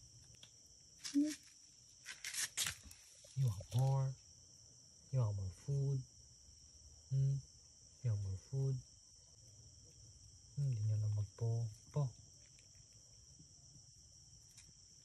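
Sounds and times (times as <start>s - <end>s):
crickets chirping: 0.0s - 15.0s
man murmuring: 5.2s - 6.0s, 7.1s - 7.4s, 8.1s - 8.8s, 10.6s - 12.1s.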